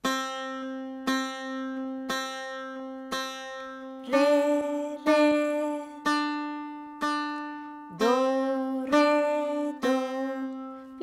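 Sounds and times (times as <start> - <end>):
plucked lute notes ringing: 0.0 - 11.0.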